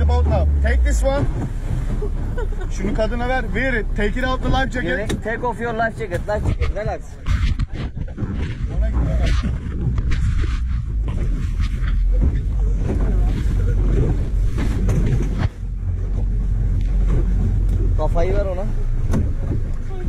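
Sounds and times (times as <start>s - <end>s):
boat motor rumbling: 0.0s - 20.0s
muffled rubbing on microphone: 6.0s - 16.2s.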